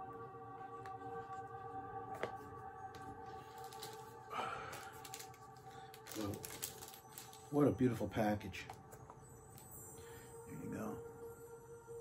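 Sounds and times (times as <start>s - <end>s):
faint background music: 0.0s - 12.0s
rustle of handling a box set: 3.2s - 7.4s.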